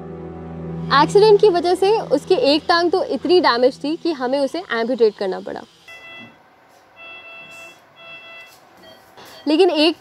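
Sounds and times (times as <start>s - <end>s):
patient monitor alarm beeps: 5.9s - 6.4s, 7.0s - 10.0s.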